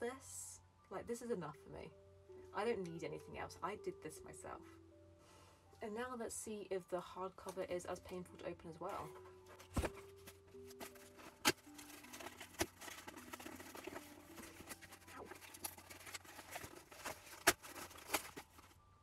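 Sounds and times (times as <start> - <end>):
soft background music: 0.0 - 19.0
cardboard tearing and crackling: 9.6 - 18.8.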